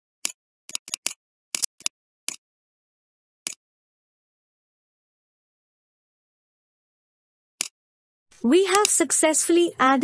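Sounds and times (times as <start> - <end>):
computer mouse clicking: 0.2 - 2.4, 8.7 - 9.0.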